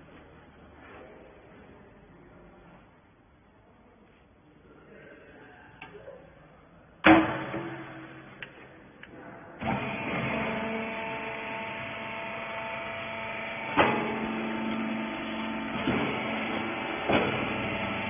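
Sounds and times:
machine clunk: 7.0 - 8.6, 13.7 - 18.0
electric motor running: 9.6 - 18.0.

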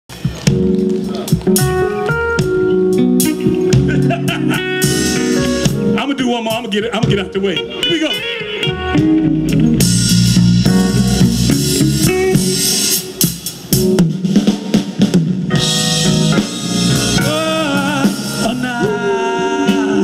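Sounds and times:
soul band playing: 0.1 - 20.0
lead and harmony voices singing: 17.2 - 20.0.

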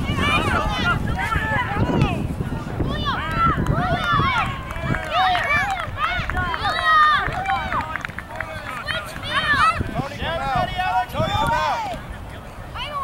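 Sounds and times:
voices calling and shouting: 0.0 - 13.0
wind rumble on microphone: 0.0 - 13.0.

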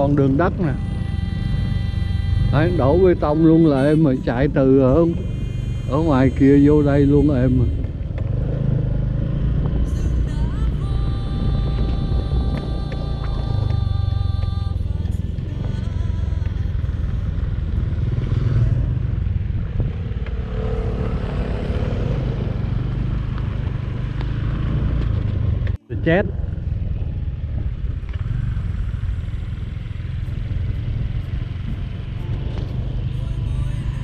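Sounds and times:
motorcycle engine running: 0.0 - 34.0
motorcycle passing: 0.0 - 34.0.

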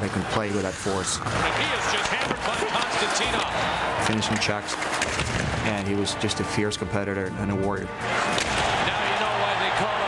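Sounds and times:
arena crowd noise: 0.0 - 6.2, 8.0 - 10.0.

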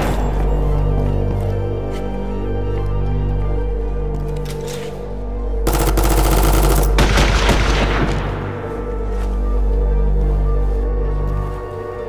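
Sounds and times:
low music drone: 0.0 - 12.0
automatic gunfire: 5.7 - 8.5.

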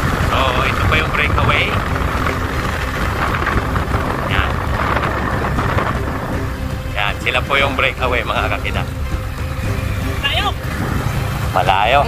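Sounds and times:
motorcycle engine running: 0.0 - 12.0
wind buffeting: 0.0 - 12.0.

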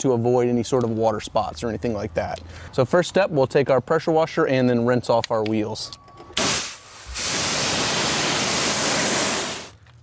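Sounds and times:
pressure washer spraying: 6.4 - 9.8.

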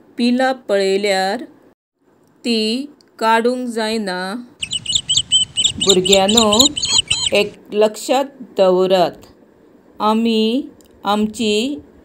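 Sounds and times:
nestlings begging chirps: 4.6 - 7.6.

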